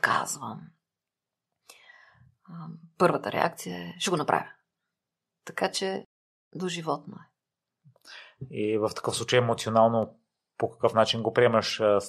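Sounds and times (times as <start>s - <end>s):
woman speaking: 0.0s - 0.8s, 2.5s - 4.6s, 5.5s - 7.3s
soft breath: 1.6s - 2.3s, 8.0s - 8.5s.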